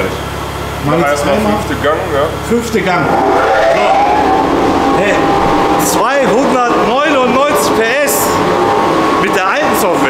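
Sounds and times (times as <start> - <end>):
car engine running hard: 0.0 - 10.0.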